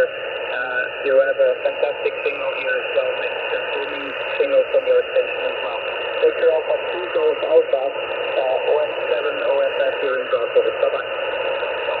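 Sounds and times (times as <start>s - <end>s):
radio static hiss: 0.0s - 12.0s
thin radio voice: 0.0s - 12.0s.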